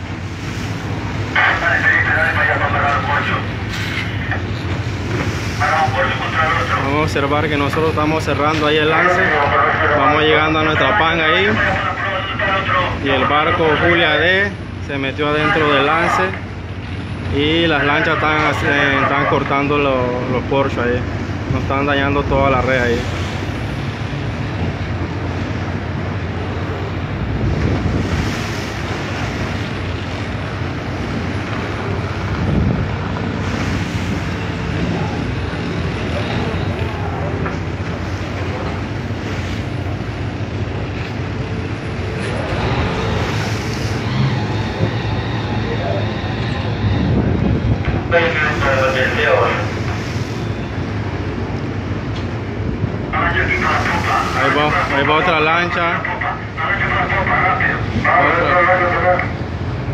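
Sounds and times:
sea noise: 0.0 - 59.9
ship engine drone: 0.0 - 59.9
wind on microphone: 25.6 - 39.2, 42.2 - 49.1.

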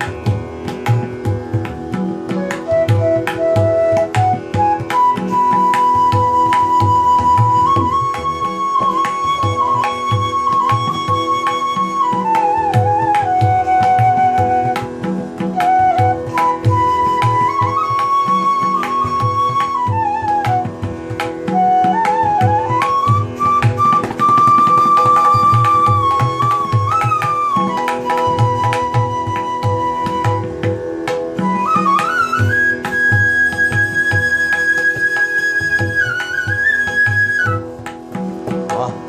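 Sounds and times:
bamboo flute melody: 0.0 - 39.0
tabla drum strokes: 0.0 - 39.0.

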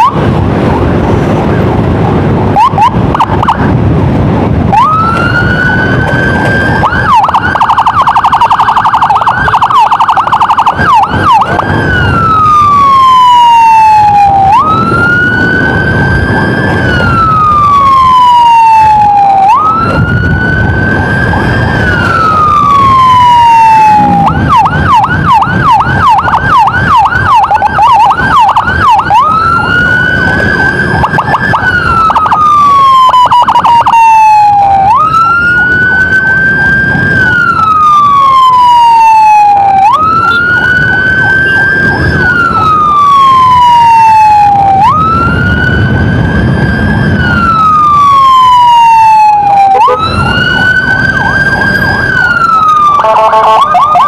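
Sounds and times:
electronic emergency siren: 0.0 - 0.5, 2.4 - 3.9, 4.6 - 54.0
engine and road noise: 0.0 - 54.0.

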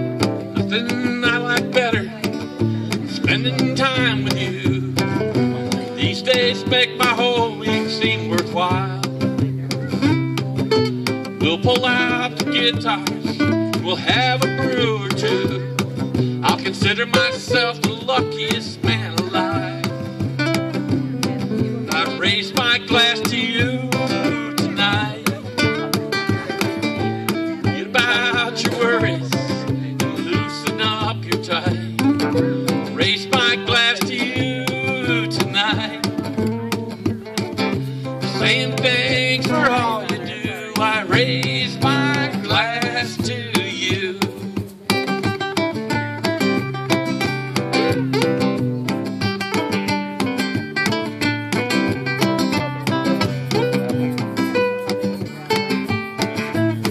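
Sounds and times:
acoustic guitars strumming: 0.0 - 56.9.

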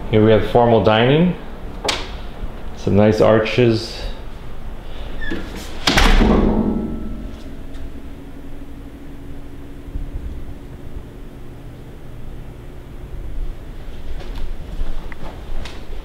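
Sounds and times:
low rumbling handling noise: 1.5 - 16.0
sudden knock: 5.9 - 8.0.

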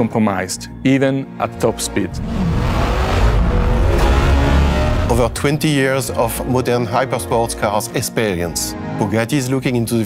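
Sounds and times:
car engine revving: 2.0 - 5.6.

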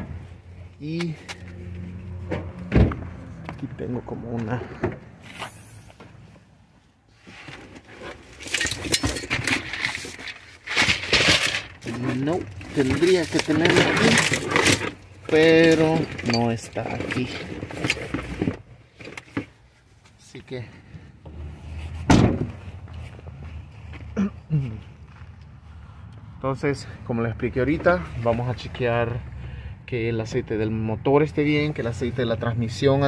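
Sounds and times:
objects scraping and knocking: 7.1 - 19.6
footsteps: 21.3 - 26.1
car hatch slamming: 22.1 - 22.5.

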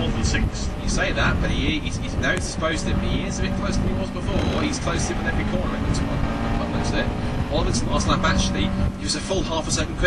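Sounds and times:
car engine at steady revs: 0.0 - 10.0
road noise: 0.0 - 10.0
wind noise: 0.0 - 10.0.

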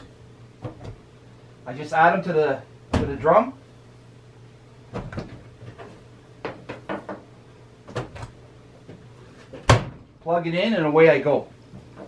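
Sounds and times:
dryer door shutting: 9.6 - 10.1.

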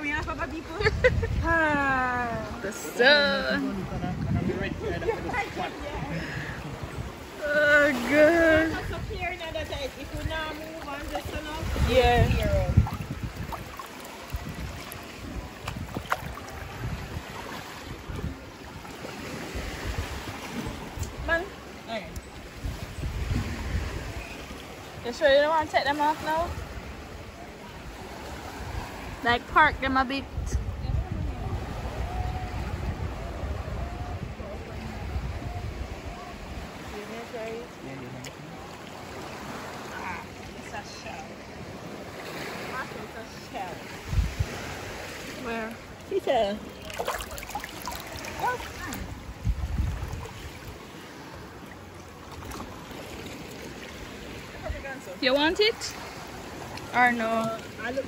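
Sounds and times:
seawater lapping and sloshing: 0.0 - 58.0
shallow sea water washing: 4.7 - 30.2, 31.3 - 58.0.

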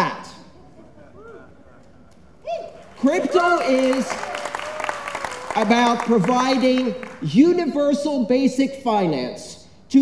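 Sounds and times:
hall room tone: 0.0 - 10.0.

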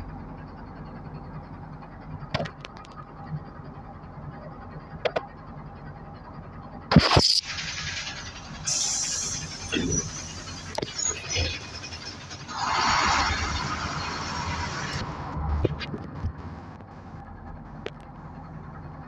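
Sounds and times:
bus engine running: 0.0 - 19.0
loud sharp clatter: 6.9 - 9.4
air hiss: 8.7 - 10.4.

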